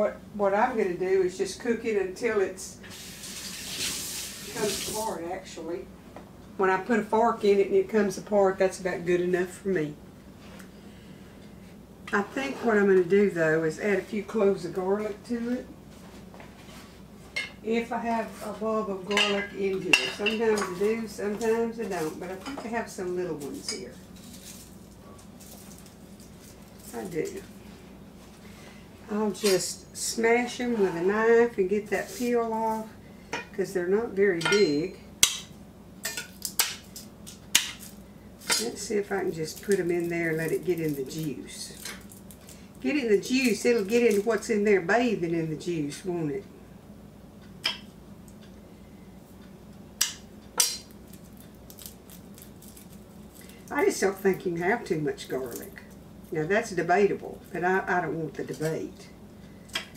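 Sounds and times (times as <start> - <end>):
low steady hum: 0.0 - 59.9
rustling and clicks of small items: 23.4 - 27.6.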